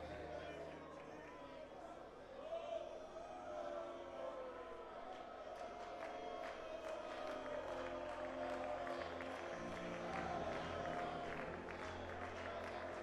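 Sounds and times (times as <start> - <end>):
hand claps: 5.6 - 13.0
congregation singing and calling out: 6.4 - 13.0.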